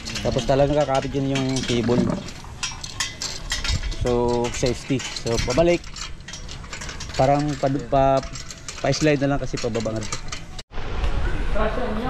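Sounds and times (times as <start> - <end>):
man talking: 0.1 - 2.3, 4.0 - 5.8, 7.2 - 10.2.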